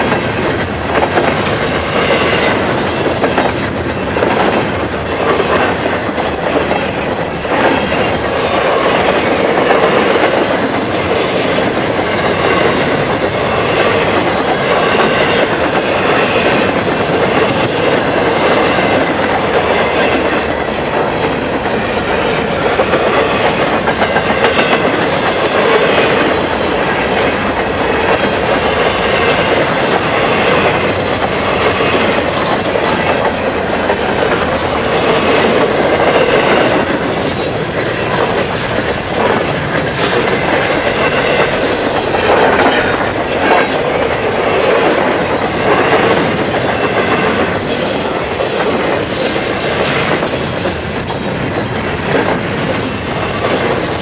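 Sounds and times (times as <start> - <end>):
steel wheels on rail: 0.0 - 54.0.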